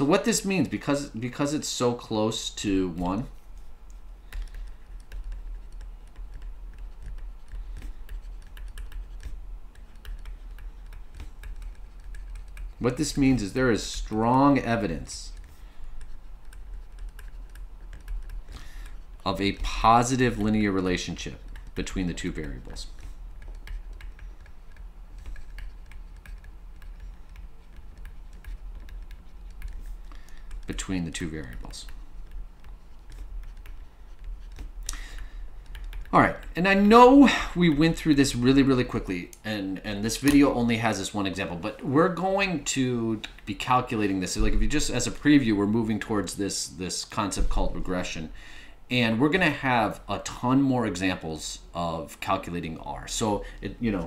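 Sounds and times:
steady low hum: 0.0 - 54.0
stylus tapping tablet screen: 3.0 - 12.8, 15.3 - 20.6, 21.4 - 37.1.

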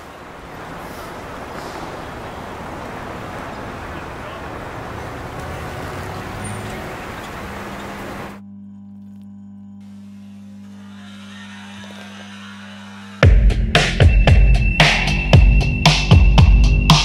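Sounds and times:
passing cars: 0.0 - 8.4
steady low hum: 0.0 - 10.8.

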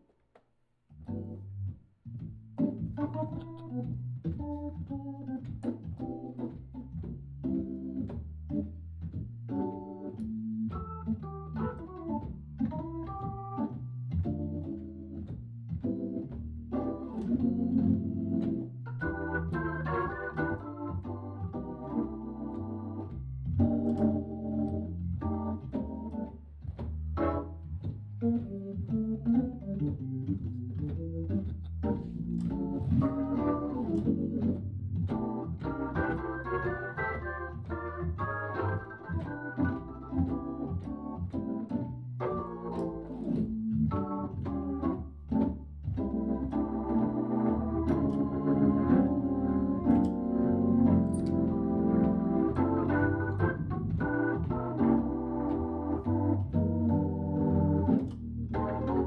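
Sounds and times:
sustained low bass line: 0.9 - 59.0
organ chords and melody: 1.0 - 59.0.

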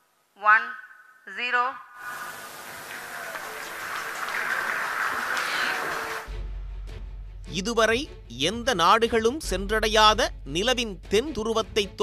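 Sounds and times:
spectators cheering: 2.0 - 6.3.

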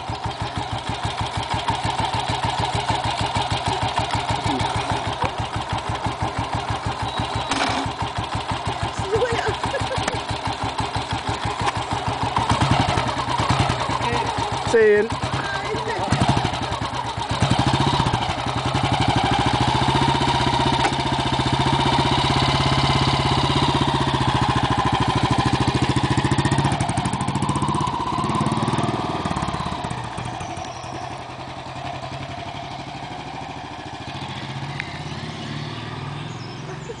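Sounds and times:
motorcycle engine pulling away: 0.0 - 37.0.

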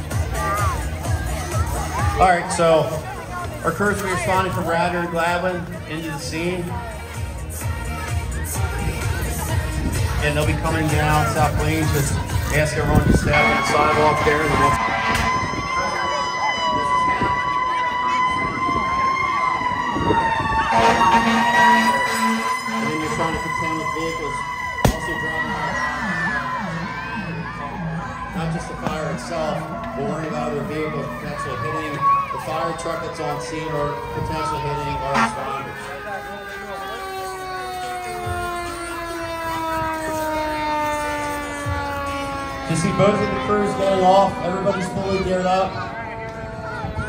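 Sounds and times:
crowd chatter: 0.0 - 47.0
fire engine siren wailing: 0.0 - 47.0
low horn blasts: 12.6 - 25.8, 32.4 - 47.0.

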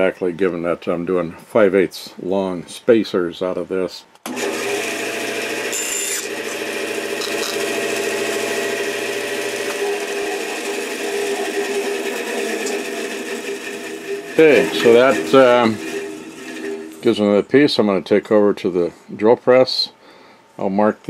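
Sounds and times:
bandsaw cutting wood: 4.3 - 17.2.

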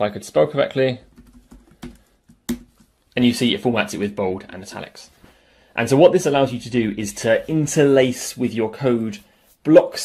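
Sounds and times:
keyboard key taps: 1.1 - 2.9.

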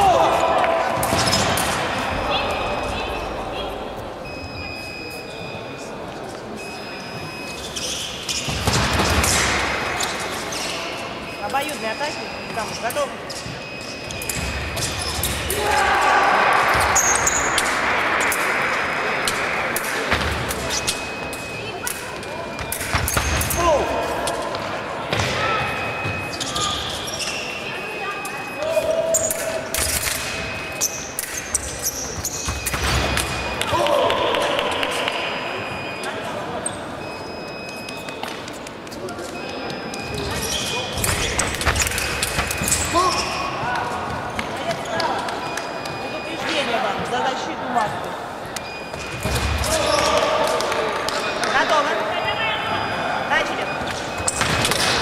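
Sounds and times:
voices shouting: 15.3 - 20.0.

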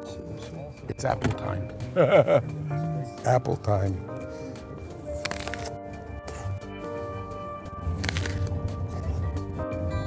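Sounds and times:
background music: 0.0 - 10.0
crunchy apple bites: 8.0 - 8.5.

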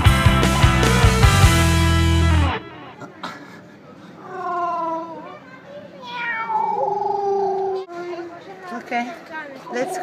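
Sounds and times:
cat meowing: 6.0 - 7.8.

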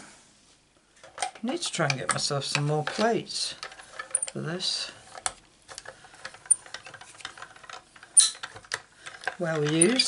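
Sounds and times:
die-cutting machine clicks and creaks: 5.2 - 10.0.

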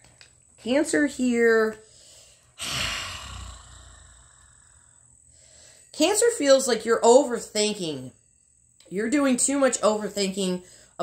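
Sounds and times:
woman sighing: 2.6 - 4.8.

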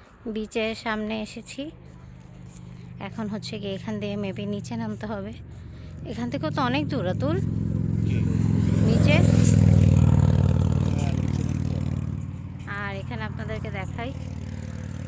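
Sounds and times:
motor vehicle passing: 0.0 - 15.0.

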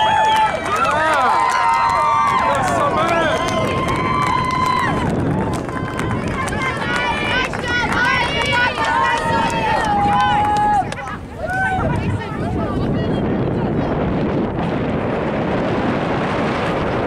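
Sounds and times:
voices shouting: 4.9 - 12.8.

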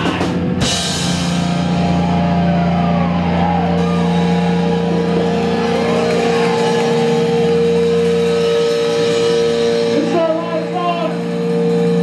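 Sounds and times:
droning electric guitars and bass: 0.0 - 12.0
guitar feedback tones: 0.2 - 12.0.

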